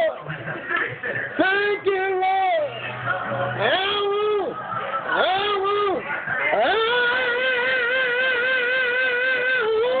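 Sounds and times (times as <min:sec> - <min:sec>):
man singing gospel: 0:00.8 - 0:10.0.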